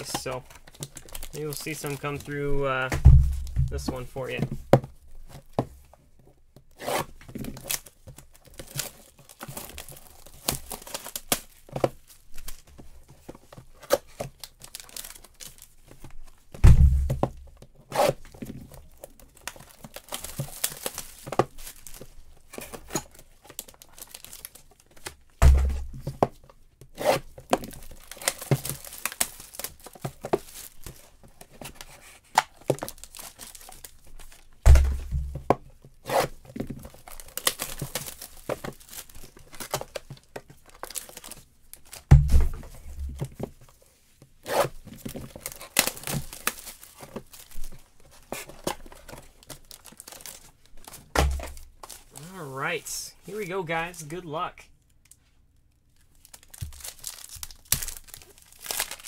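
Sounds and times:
wrappers tearing and crinkling: 0:00.0 - 0:04.4, 0:06.7 - 0:16.4, 0:18.0 - 0:26.0, 0:27.0 - 0:34.6, 0:36.0 - 0:42.1, 0:44.4 - 0:53.9, 0:56.0 - 0:59.0
dull thumps: 0:02.8 - 0:05.8.

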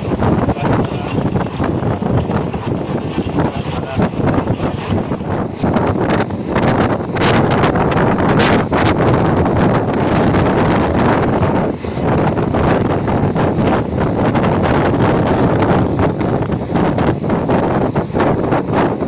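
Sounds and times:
train running noise: 0:00.0 - 0:19.0
wind rushing over microphone: 0:00.0 - 0:19.0.

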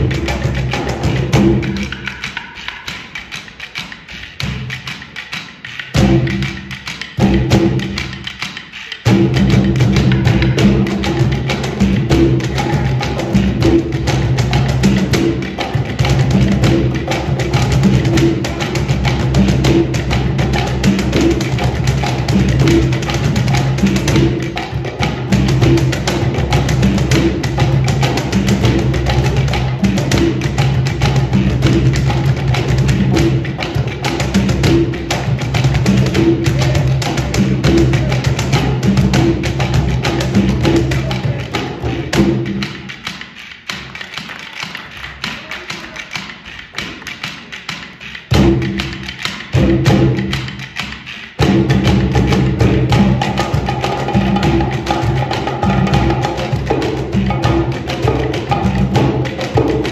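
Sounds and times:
hand drums playing a groove: 0:00.0 - 0:59.9.

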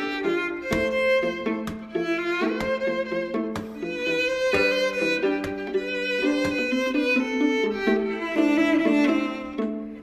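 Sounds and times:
string trio playing: 0:00.0 - 0:10.0.

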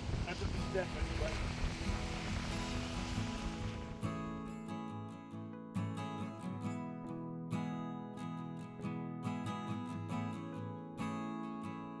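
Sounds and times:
surf: 0:00.0 - 0:04.4
wind: 0:00.0 - 0:04.9
acoustic guitar music: 0:00.0 - 0:12.0.

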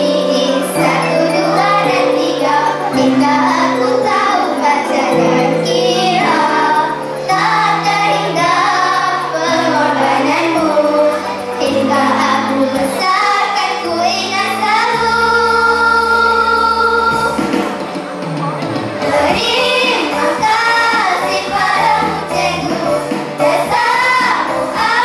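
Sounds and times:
girls singing together: 0:00.0 - 0:17.4, 0:19.0 - 0:25.0
instrumental accompaniment: 0:00.0 - 0:25.0.

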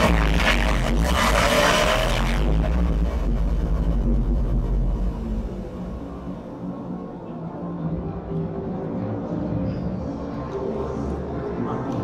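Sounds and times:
loud bright sweep: 0:00.0 - 0:03.9
deep bass drone: 0:00.0 - 0:08.3
electronic music: 0:00.0 - 0:08.5.

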